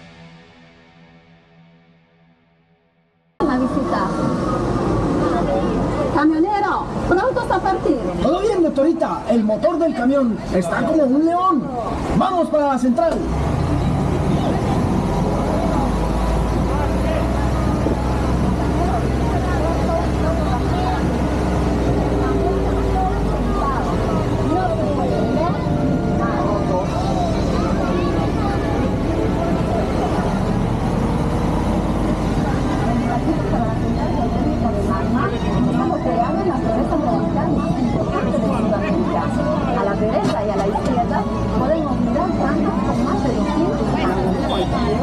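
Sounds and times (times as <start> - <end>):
truck engine humming: 3.4 - 45.0.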